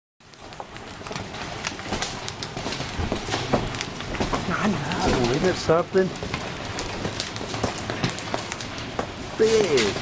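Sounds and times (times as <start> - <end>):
hailstones hitting pavement: 0.2 - 10.0
steady hiss: 0.6 - 10.0.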